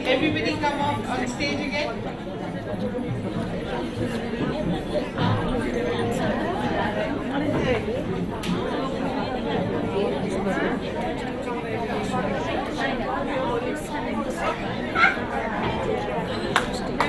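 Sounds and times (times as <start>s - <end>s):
crowd chatter in a hall: 0.0s - 17.0s.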